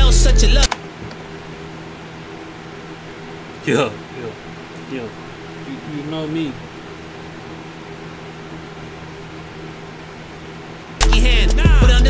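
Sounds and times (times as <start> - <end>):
room tone hiss with low hum: 0.0 - 12.0.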